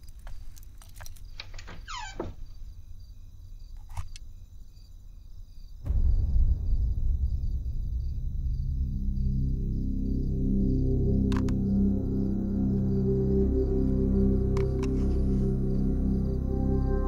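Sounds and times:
insect chirping: 0.0s - 17.0s
low droning music: 5.8s - 17.0s.

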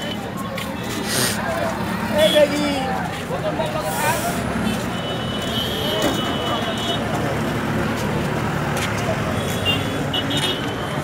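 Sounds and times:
people talking: 0.0s - 5.0s
street traffic: 0.0s - 11.0s.

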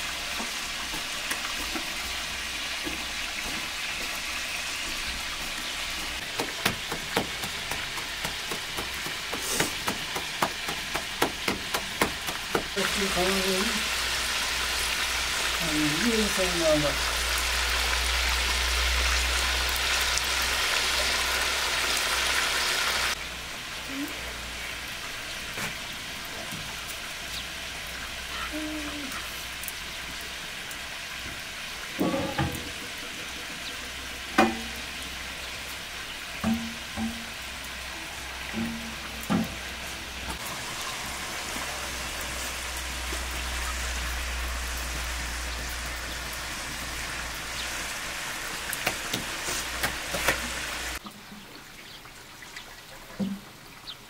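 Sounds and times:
chickens sizzling in oil: 0.0s - 54.0s.

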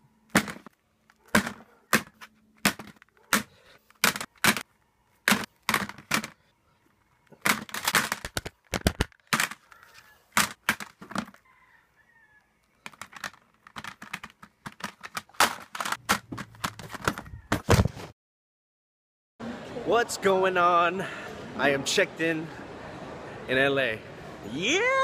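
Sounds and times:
plastic cd cases clacking: 0.3s - 6.4s, 7.0s - 11.4s, 12.6s - 17.7s.

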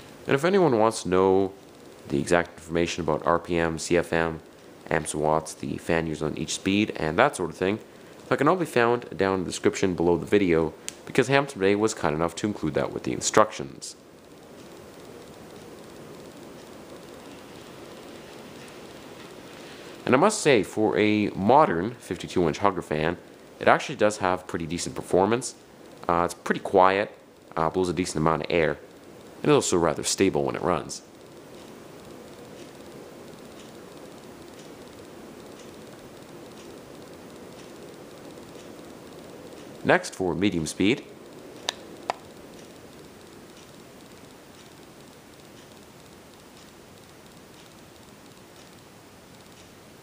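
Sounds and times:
ceiling fan air whoosh: 0.0s - 50.0s
soft motor hum: 0.0s - 50.0s.

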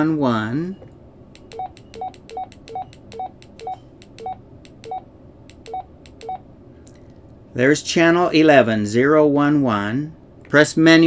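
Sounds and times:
radio keypad beeps: 0.8s - 5.0s
button clicks: 1.4s - 6.3s.

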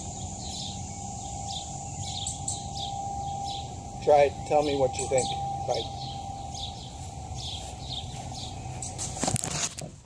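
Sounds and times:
small birds chirping: 0.0s - 9.5s
outdoor ambience: 0.0s - 10.0s
footsteps on grass: 3.5s - 10.0s.

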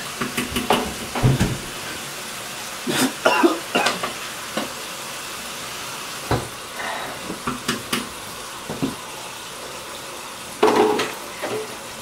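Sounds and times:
running water hissing: 0.0s - 12.0s
clattering in sink: 0.2s - 1.9s, 6.3s - 6.6s, 10.6s - 11.7s.

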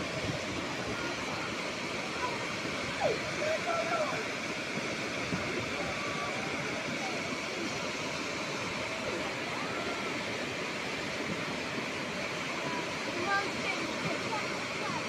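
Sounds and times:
muddy floodwater rushing: 0.0s - 15.0s.

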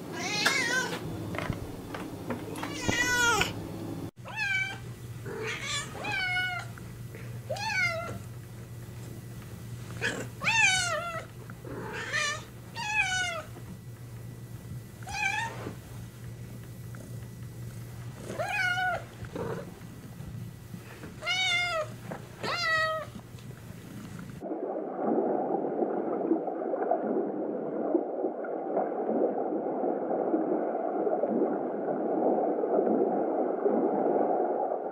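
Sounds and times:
cat meowing: 0.1s - 1.0s, 2.5s - 3.5s, 4.2s - 6.7s, 7.5s - 8.2s, 21.2s - 23.1s.

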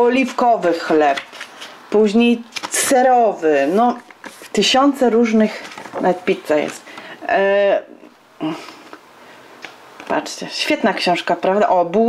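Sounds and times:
book pages turning: 0.2s - 7.1s, 9.6s - 10.2s.

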